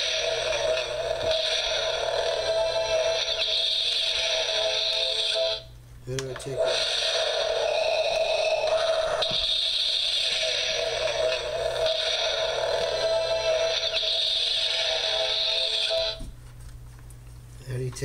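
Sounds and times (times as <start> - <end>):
music from small speaker: 11.3 - 16.3.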